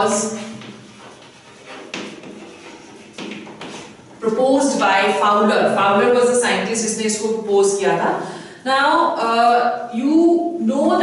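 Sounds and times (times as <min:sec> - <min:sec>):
chalk tapping and scratching: 0:00.0 - 0:05.2.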